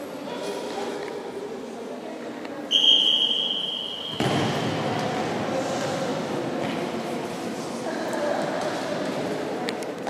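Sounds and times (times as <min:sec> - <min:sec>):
referee's whistle blast: 0:02.7 - 0:04.3.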